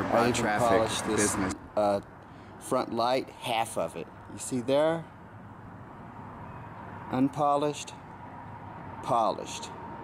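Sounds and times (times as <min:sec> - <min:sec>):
distant road traffic hum: 0:00.0 - 0:10.0
faint steady tone: 0:04.1 - 0:08.4.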